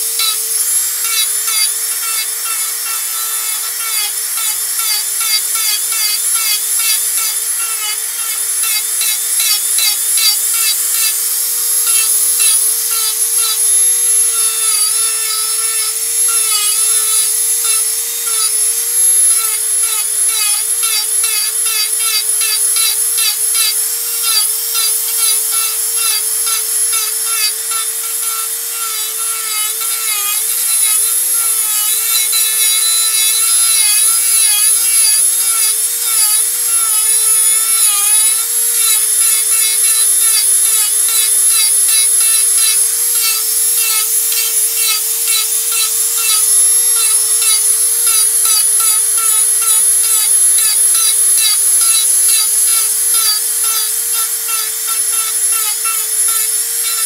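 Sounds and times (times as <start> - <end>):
bit grinding wood: 0.0 - 57.0
rotary tool motor whine: 0.0 - 57.0.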